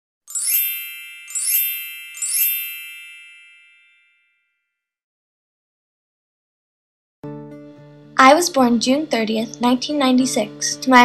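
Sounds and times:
bright bell-like chime: 0.3s - 4.8s.

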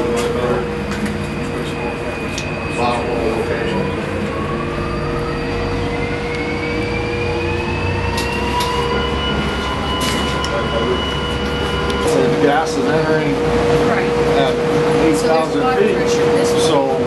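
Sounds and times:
machinery low hum: 0.0s - 17.0s
motor whine rising: 0.0s - 17.0s.

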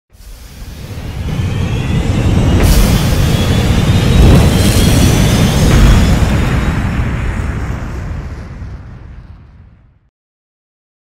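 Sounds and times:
rising whines: 0.2s - 9.4s
deep rumble: 0.2s - 10.1s
explosion-like boom: 0.2s - 10.1s.

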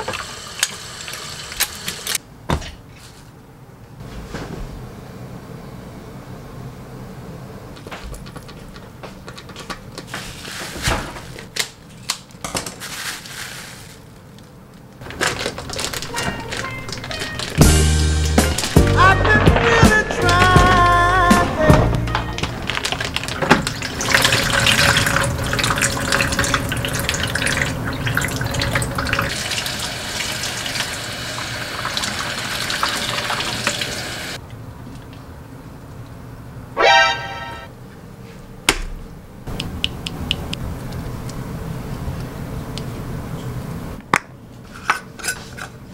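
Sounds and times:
plastic wrap crinkling: 8.5s - 20.4s, 22.3s - 25.1s
background music with beat: 17.0s - 22.4s
short pitched tone: 36.8s - 37.7s.

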